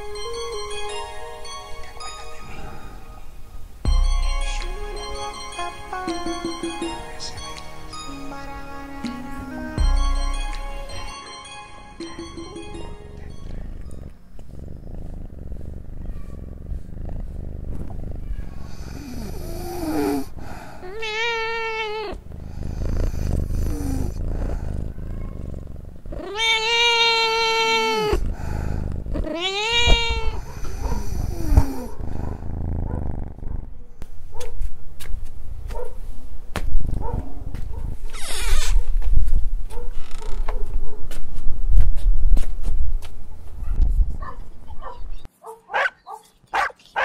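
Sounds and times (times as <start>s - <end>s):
cat purring: 2.0s - 7.9s, 12.0s - 34.1s, 36.6s - 40.5s
cat meowing: 16.0s - 16.8s, 18.2s - 19.3s, 20.8s - 22.2s, 24.5s - 28.2s, 29.2s - 31.9s.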